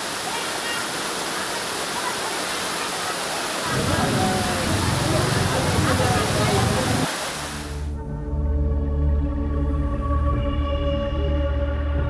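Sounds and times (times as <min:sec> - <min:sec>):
floodwater rushing: 0:00.0 - 0:07.9
people's voices: 0:00.2 - 0:07.4.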